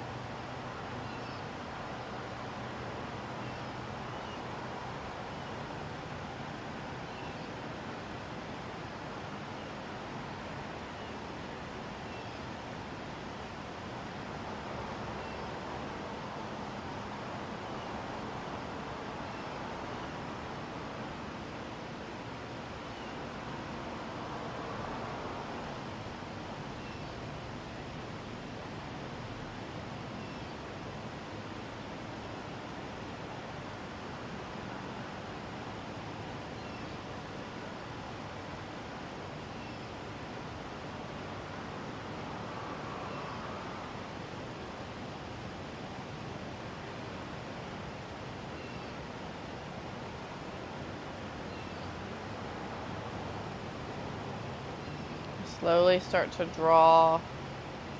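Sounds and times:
outdoor background hiss: 0.0s - 57.9s.

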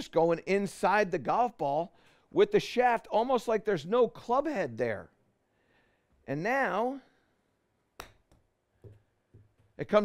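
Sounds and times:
golf club striking ball: 8.0s - 8.4s.

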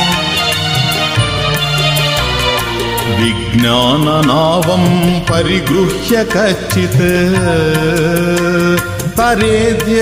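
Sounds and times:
percussion beat: 0.0s - 10.0s
sustained instrumental accompaniment: 0.0s - 10.0s
person singing ornamented melody: 3.0s - 10.0s.

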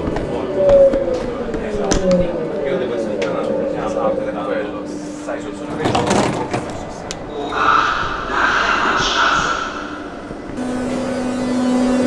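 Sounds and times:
train hissing hum: 6.6s - 12.0s.

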